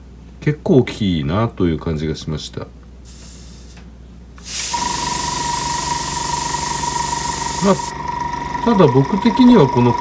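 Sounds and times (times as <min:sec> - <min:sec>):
airbrush air hiss: 0:03.0 - 0:03.8, 0:04.4 - 0:07.9
compressor motor whining: 0:04.4 - 0:10.0.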